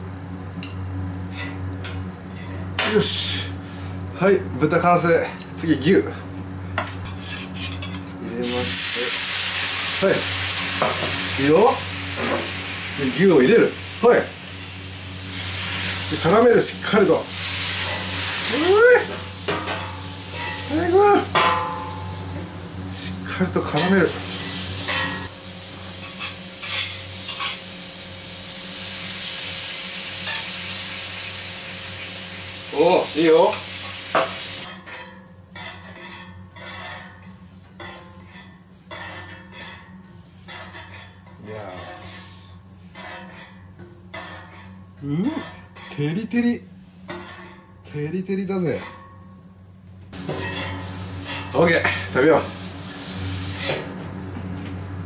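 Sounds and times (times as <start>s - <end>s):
metal spatulas scraping a griddle: 1.3s - 3.0s, 6.8s - 8.6s, 14.6s - 18.8s, 19.4s - 22.4s, 23.0s - 25.3s, 26.0s - 27.7s, 34.6s - 46.2s, 46.8s - 47.7s, 50.2s - 52.0s
meat sizzling on a griddle: 8.4s - 34.7s, 50.2s - 54.9s.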